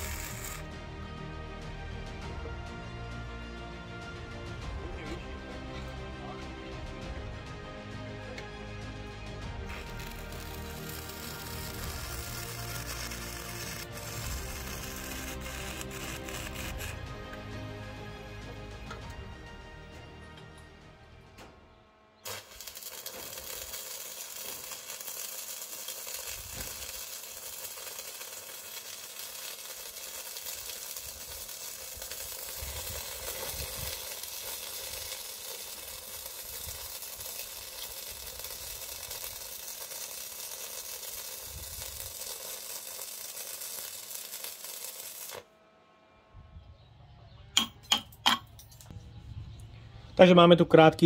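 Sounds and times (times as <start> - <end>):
arc welding crackle: 0.0 - 0.7, 9.4 - 17.4, 22.2 - 45.6
sharp metal taps: 47.6 - 48.9.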